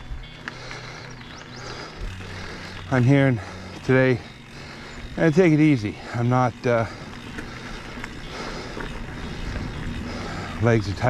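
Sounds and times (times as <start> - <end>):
bike tyres rolling on dirt: 0.0 - 11.0
faint rattles and clicks: 0.0 - 11.0.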